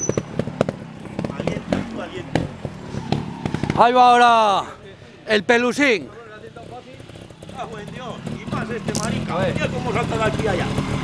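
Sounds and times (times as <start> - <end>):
motorcycle engine running: 0.0 - 4.0, 6.0 - 11.0.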